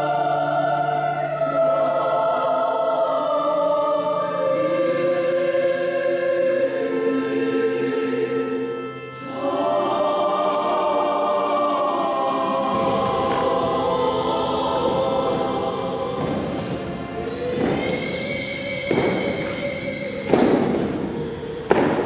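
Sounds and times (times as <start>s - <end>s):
church choir singing a hymn: 0.0s - 22.0s.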